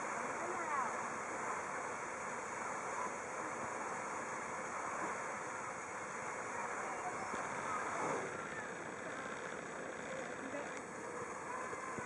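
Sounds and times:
geyser water jet spraying: 0.0s - 12.0s.

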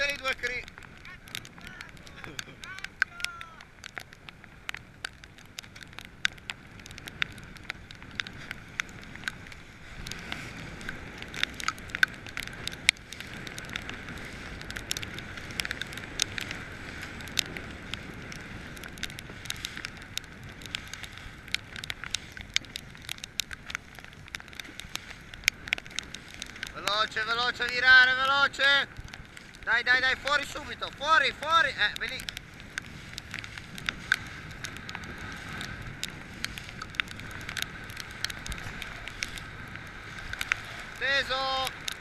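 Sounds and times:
choppy sea and wind rushing: 0.0s - 42.0s
sharp crackling clicks: 0.0s - 42.0s.

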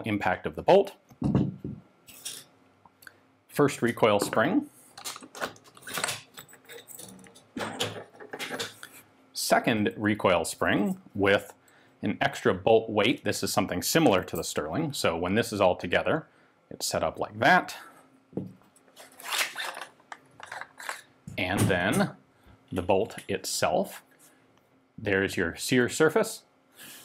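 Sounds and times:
metal parts scraping slide: 5.0s - 7.5s, 19.0s - 21.1s
metal jingling and scraping: 5.7s - 7.8s.

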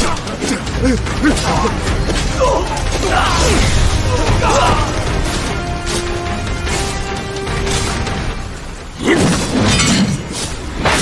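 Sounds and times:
steady rain: 0.0s - 9.6s.

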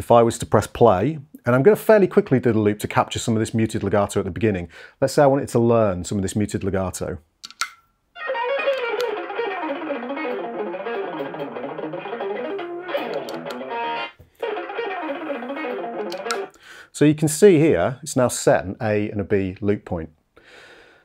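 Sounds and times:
fast palm-muted electric guitar: 8.2s - 16.5s.

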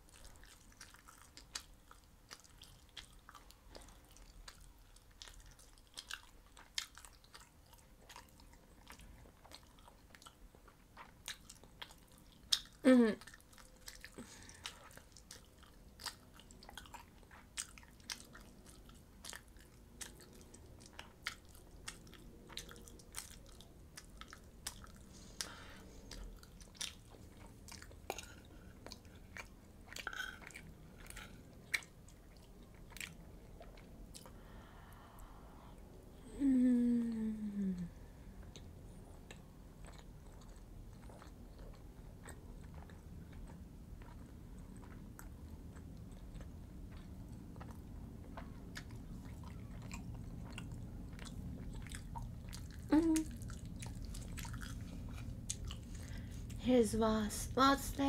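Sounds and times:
chewing mouth clicks: 0.1s - 34.4s, 38.4s - 56.6s
person humming with a laugh: 12.8s - 13.2s, 36.2s - 37.9s, 52.9s - 53.3s.

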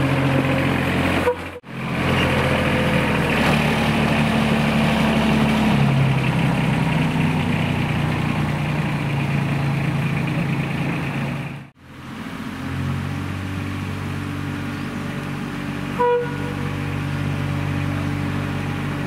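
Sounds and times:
steady engine hum: 0.0s - 19.0s.

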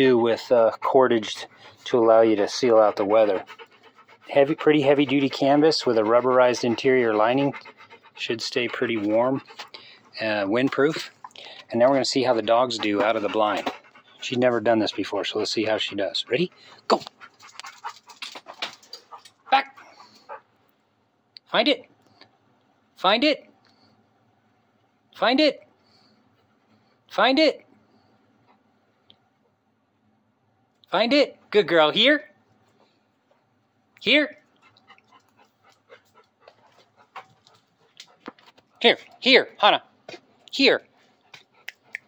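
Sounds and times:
dog panting: 0.0s - 20.5s, 34.4s - 39.3s, 40.8s - 42.0s
man calling: 4.3s - 7.6s, 11.7s - 17.1s, 19.5s - 19.8s.

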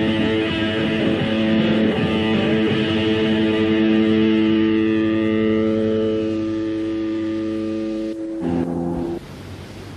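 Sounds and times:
distorted electric guitar chord: 0.0s - 9.2s.

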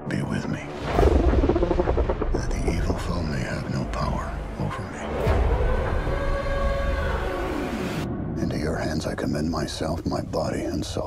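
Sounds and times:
deep rumble: 0.8s - 11.0s.

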